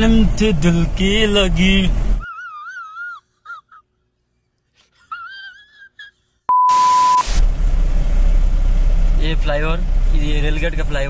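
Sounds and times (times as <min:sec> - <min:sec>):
car road and engine noise: 0:00.0 - 0:02.2, 0:07.0 - 0:11.0
steady beep: 0:06.5 - 0:07.4
burst of static: 0:06.7 - 0:07.4.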